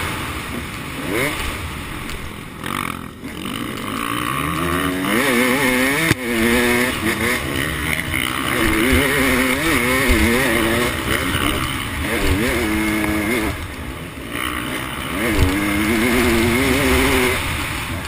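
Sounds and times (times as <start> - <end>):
motorbike engine revving: 0.0 - 18.0.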